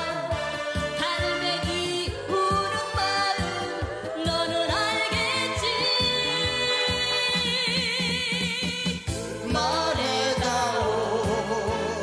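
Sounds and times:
man and woman singing duet: 1.0s - 12.0s.

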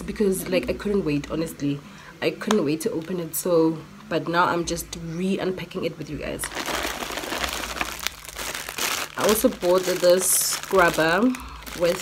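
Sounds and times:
plastic packaging crinkling: 6.4s - 12.0s.

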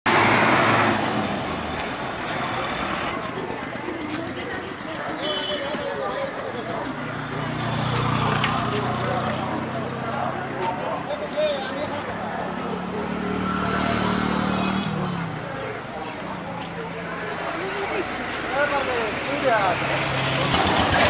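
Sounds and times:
vehicle engine: 0.1s - 21.0s
people talking: 1.7s - 21.0s.

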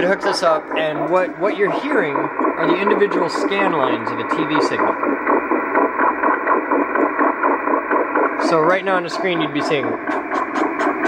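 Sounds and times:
warbling radio tone pattern: 0.0s - 11.0s.

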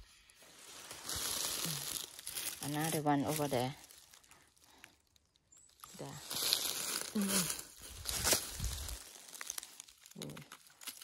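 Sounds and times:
dry leaves rustling and crackling: 0.0s - 11.0s.

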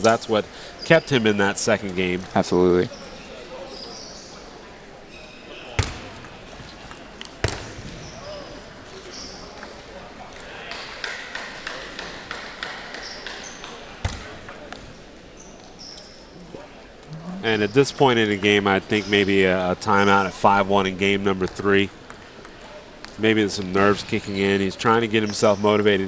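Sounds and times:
sneaker squeaks on floor: 7.4s - 9.5s, 13.0s - 14.2s, 15.4s - 16.2s.

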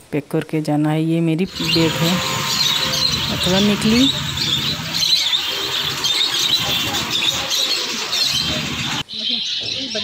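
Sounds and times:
small birds chirping and twittering: 1.5s - 10.0s.

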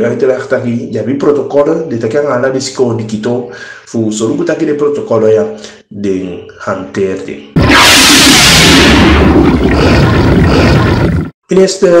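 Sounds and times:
loud rushing whoosh: 7.6s - 11.0s.

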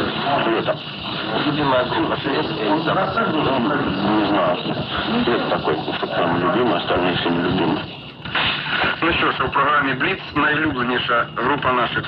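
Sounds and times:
muffled radio interview speech: 0.0s - 12.0s.

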